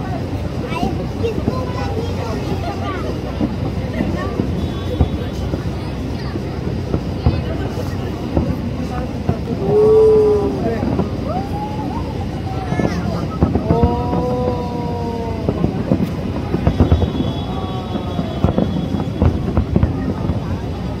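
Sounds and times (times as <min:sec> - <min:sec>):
fireworks bursting and crackling: 0:00.0 - 0:21.0
steady rumble: 0:00.0 - 0:21.0.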